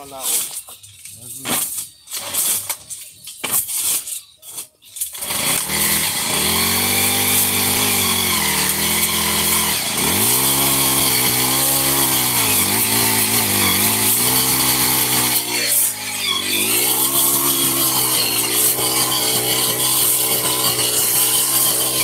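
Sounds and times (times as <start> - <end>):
earth auger gas engine running: 5.3 - 22.0.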